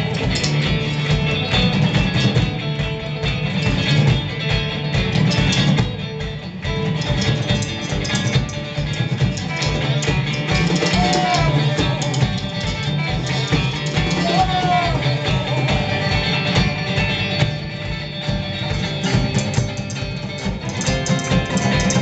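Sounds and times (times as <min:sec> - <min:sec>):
drum kit hits: 0:00.0 - 0:22.0
electric bass: 0:00.0 - 0:22.0.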